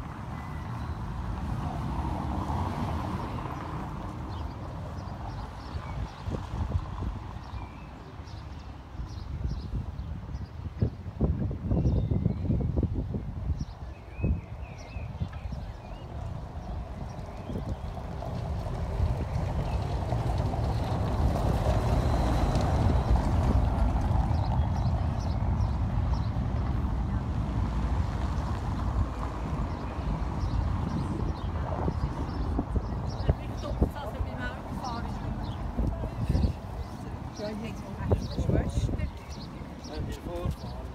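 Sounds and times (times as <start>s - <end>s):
street traffic noise: 0.0s - 40.9s
wind rumbling on microphone: 0.0s - 40.9s.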